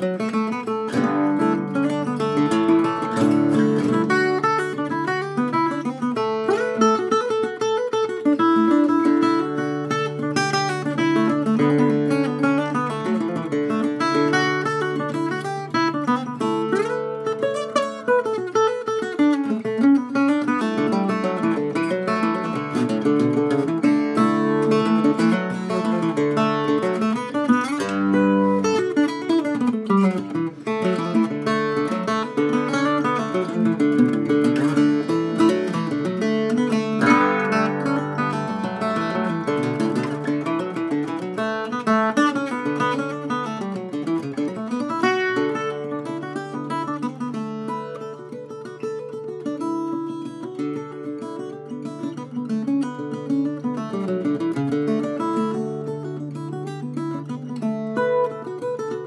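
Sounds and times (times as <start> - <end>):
octave mandolin picking a tune: 0.0 - 59.0.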